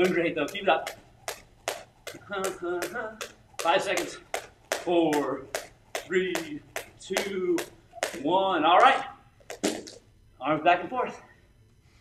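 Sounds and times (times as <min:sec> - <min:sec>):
jump rope slapping mat: 0:00.0 - 0:10.1.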